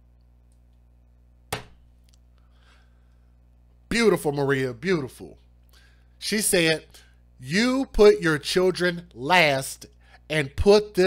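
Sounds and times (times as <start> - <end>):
low steady hum: 0.0 - 11.0
sharp knock: 1.5 - 1.8.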